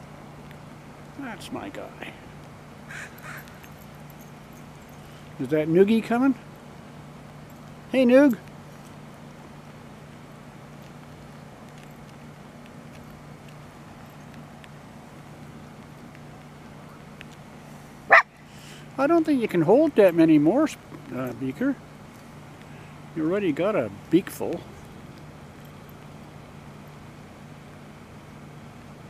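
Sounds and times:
steady low hum: 0.0s - 29.0s
crow calling: 2.9s - 3.6s.

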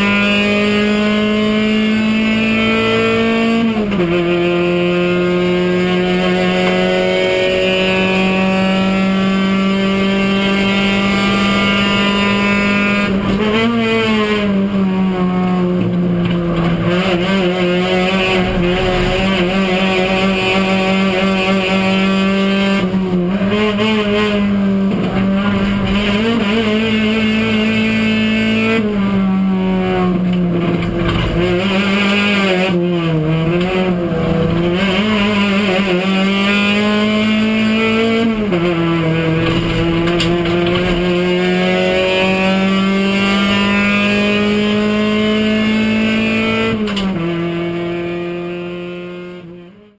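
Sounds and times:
race car engine running hard: 0.2s - 49.0s.

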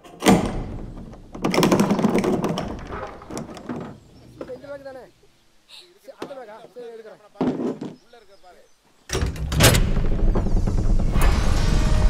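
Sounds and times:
loud bang with deep rumble: 9.2s - 12.0s
dramatic soundtrack music: 10.2s - 12.0s.

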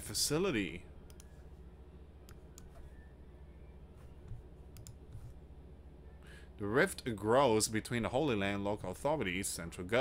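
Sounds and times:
steady low hum: 0.0s - 10.0s
computer mouse clicking: 1.1s - 1.3s, 2.3s - 2.8s, 4.2s - 5.4s.

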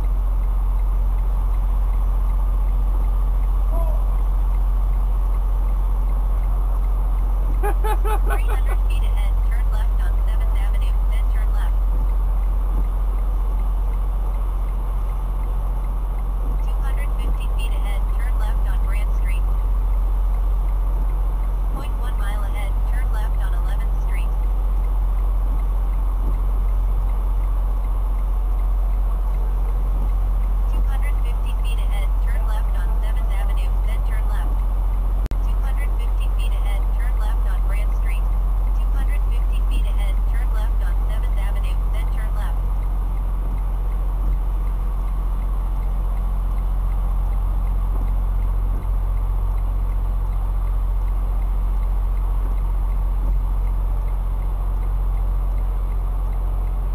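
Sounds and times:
diesel truck engine low drone: 0.0s - 56.9s.

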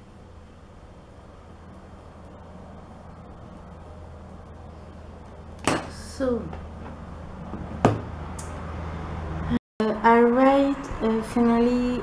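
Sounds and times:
steady low hum: 0.0s - 12.0s
objects knocking on tabletop: 6.8s - 8.1s.

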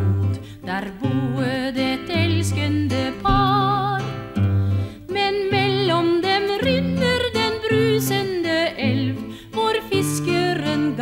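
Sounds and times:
person singing with vibrato: 0.0s - 4.3s, 5.0s - 11.0s
plucked guitar: 0.0s - 11.0s.

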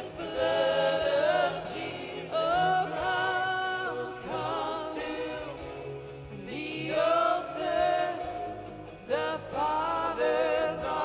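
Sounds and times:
choir singing long held notes: 0.0s - 11.0s.

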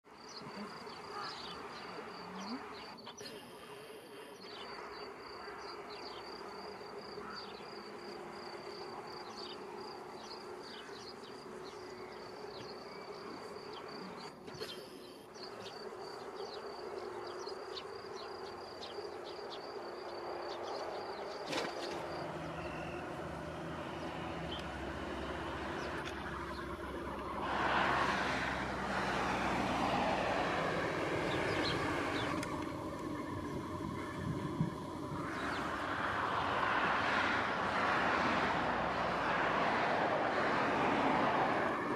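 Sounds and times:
insect chirps: 0.2s - 28.0s
distant engine rumble: 3.7s - 41.9s
insect trill: 4.4s - 14.2s, 15.1s - 23.9s.

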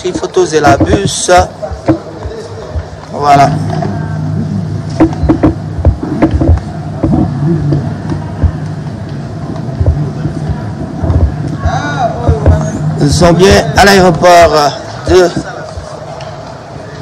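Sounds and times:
airport terminal hum: 0.0s - 17.0s
knocks and clicks: 4.9s - 10.0s.

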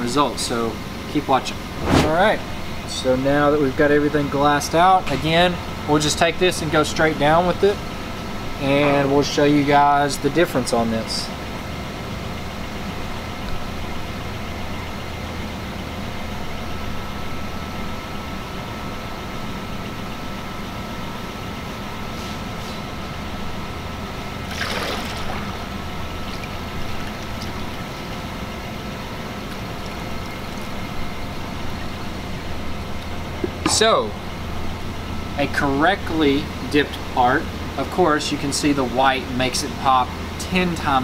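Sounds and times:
low machine hum: 0.0s - 41.0s.

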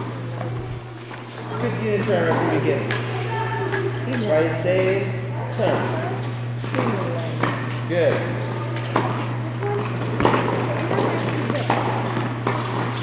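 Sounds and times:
steady low hum: 0.0s - 13.0s
tennis balls bouncing on court: 6.6s - 13.0s.

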